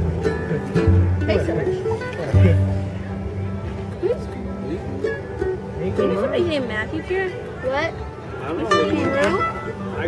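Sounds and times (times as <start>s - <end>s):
acoustic guitar picking: 0.0s - 10.0s
mandolin picking: 0.0s - 10.0s
people talking: 0.3s - 5.2s, 5.8s - 10.0s.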